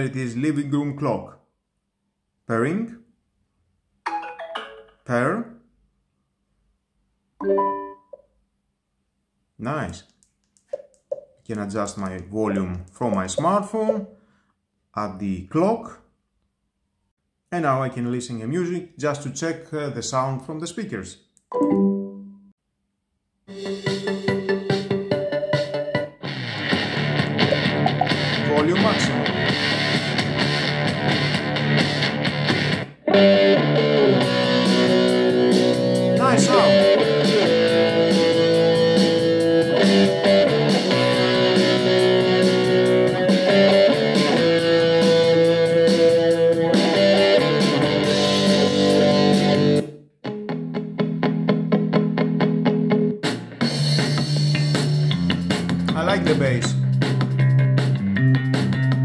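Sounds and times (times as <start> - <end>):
music from small speaker: 23.5 - 32.7, 33.3 - 49.8, 53.2 - 59.0.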